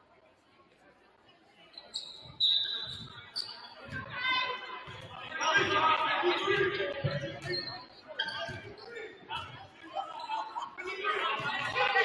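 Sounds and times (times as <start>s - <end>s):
voices on court: 0.0s - 12.0s.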